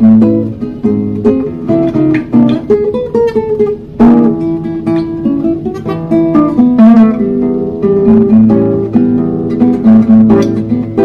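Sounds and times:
nylon-string guitar bossa nova: 0:00.0 - 0:11.0.

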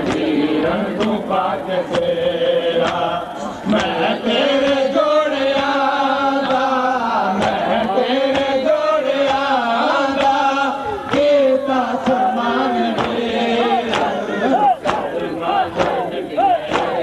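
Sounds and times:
voices chanting a lament: 0:00.0 - 0:17.0.

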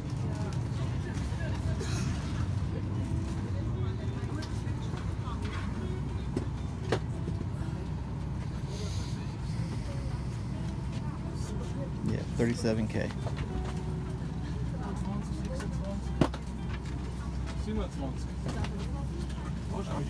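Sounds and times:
airliner cabin air supply rumble: 0:00.0 - 0:20.0
faint passenger chatter: 0:00.0 - 0:20.0.

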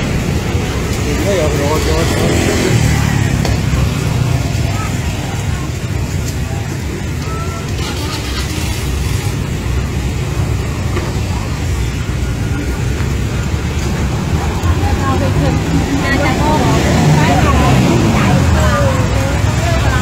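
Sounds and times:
indistinct voices: 0:00.0 - 0:20.0.

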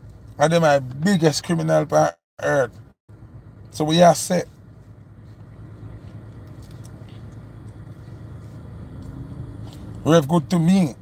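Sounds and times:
car engine rumble in cabin: 0:00.0 - 0:11.0.

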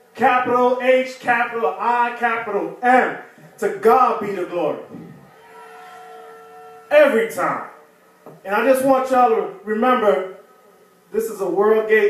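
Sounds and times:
speech: 0:00.2 - 0:04.9, 0:06.9 - 0:07.7, 0:08.4 - 0:10.4, 0:11.1 - 0:12.0.

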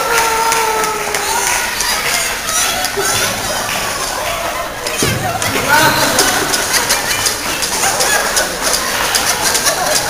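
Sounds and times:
audience applauding: 0:00.0 - 0:10.0
voices and cheers: 0:00.0 - 0:10.0.

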